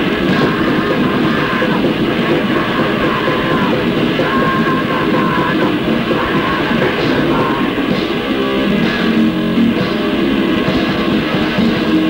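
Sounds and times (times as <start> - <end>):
hardcore punk music: 0.0 - 12.0.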